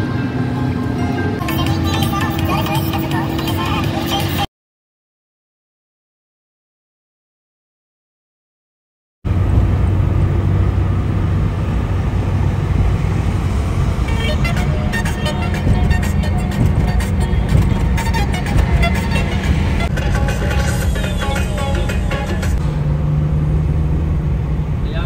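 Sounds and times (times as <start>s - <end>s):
music playing: 0.0s - 4.5s, 14.0s - 22.7s
car driving rumble from inside: 9.3s - 21.3s, 22.1s - 25.0s.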